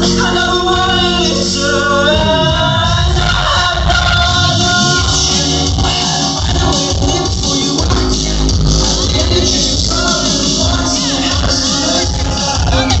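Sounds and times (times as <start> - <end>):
live concert music with heavy bass: 0.0 - 13.0.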